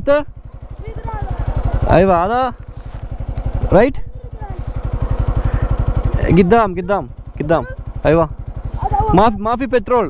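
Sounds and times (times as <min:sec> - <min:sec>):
motorcycle engine running: 0:00.0 - 0:10.0
voices: 0:00.0 - 0:10.0.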